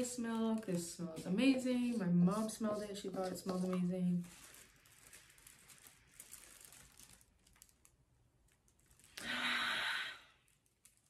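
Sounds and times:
woman sighing: 9.2 - 10.2.

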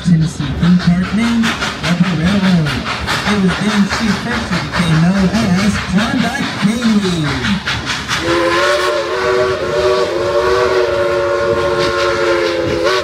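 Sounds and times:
train rolling: 0.0 - 13.0
steam locomotive whistle chord: 8.2 - 13.0.

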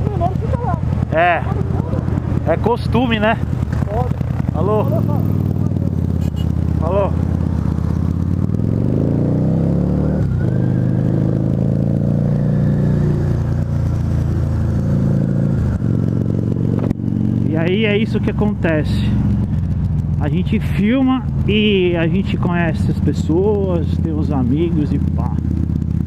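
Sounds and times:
motorcycle engine accelerating: 0.0 - 26.0.

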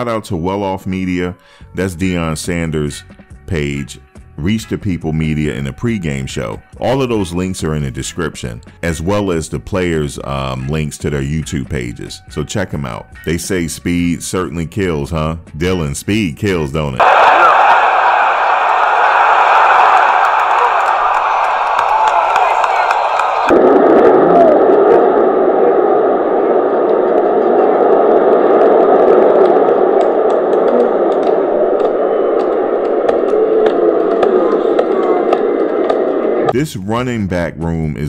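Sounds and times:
stadium crowd cheering: 17.0 - 36.7.

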